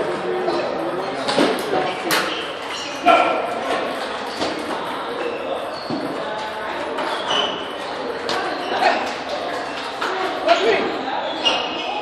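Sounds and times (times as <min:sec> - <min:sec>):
voices of players and onlookers: 0:00.0 - 0:12.0.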